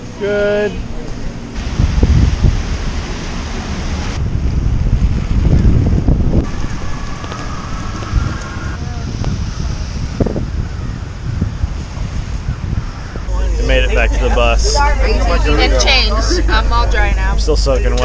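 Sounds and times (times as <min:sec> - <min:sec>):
gusty wind buffeting microphone: 0:01.4 - 0:18.0.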